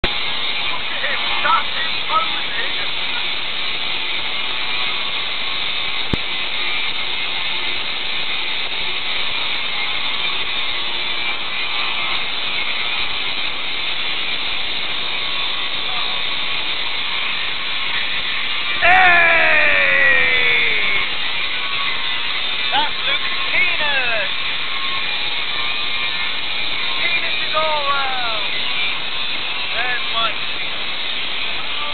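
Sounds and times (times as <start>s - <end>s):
outdoor background hiss: 0.0s - 31.9s.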